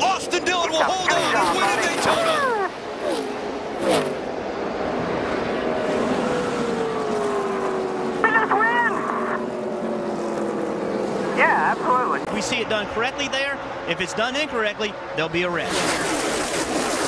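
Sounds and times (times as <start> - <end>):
race car engines slowing: 0.0 - 16.0.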